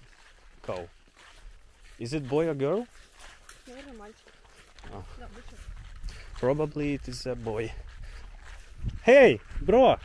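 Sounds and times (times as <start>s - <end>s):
footsteps through long grass: 0.0s - 10.0s
wind rumbling on microphone: 4.8s - 10.0s.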